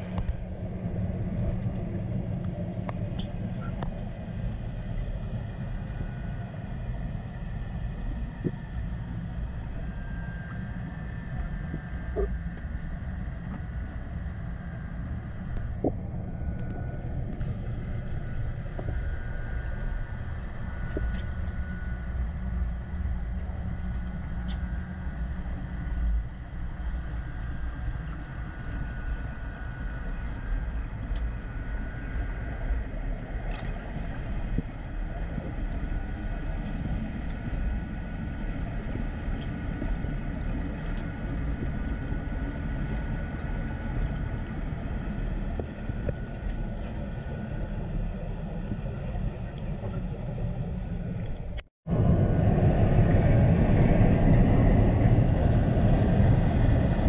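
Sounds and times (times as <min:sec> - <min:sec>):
faint steady tones: 0:00.0 - 0:57.0
underwater low rumble: 0:00.0 - 0:57.0.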